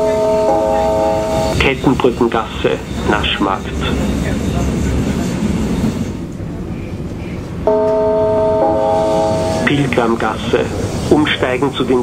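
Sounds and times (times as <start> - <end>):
chord of steady tones: 0.0 - 3.3, 7.6 - 10.8
train rumbling inside carriage: 0.0 - 12.0.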